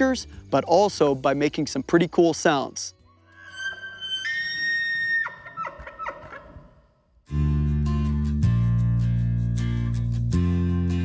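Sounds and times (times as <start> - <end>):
elk whistling bugle: 3.3 - 6.4.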